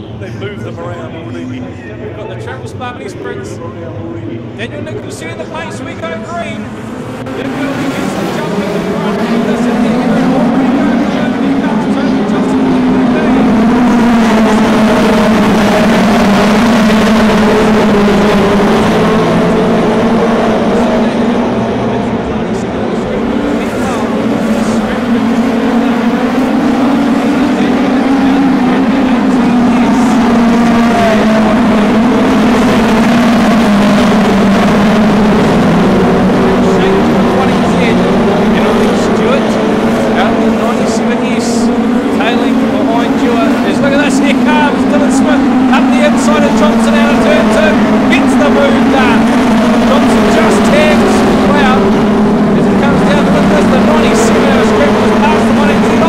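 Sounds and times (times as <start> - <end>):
race car engines droning: 0.0 - 56.0.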